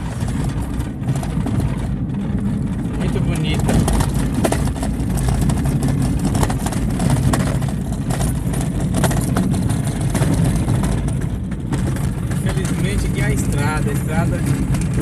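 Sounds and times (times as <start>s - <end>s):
car engine and tyre rumble: 0.0s - 15.0s
knocks and rattles: 0.0s - 15.0s.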